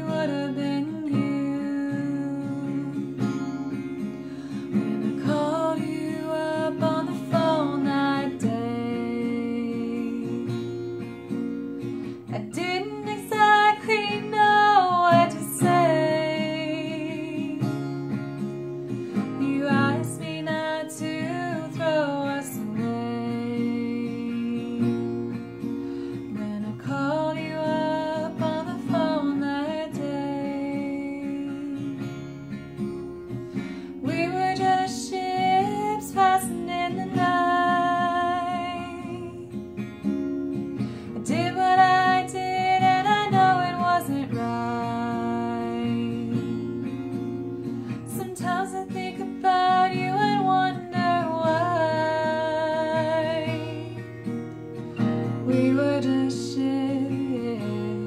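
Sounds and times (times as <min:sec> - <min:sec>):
fingerpicked acoustic guitar: 0:00.0 - 0:58.0
woman singing: 0:00.0 - 0:58.0.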